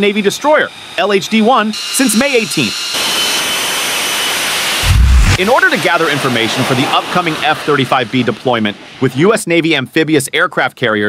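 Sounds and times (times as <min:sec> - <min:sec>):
jet engine roaring: 0:02.7 - 0:09.1
deep rumble: 0:04.8 - 0:05.4.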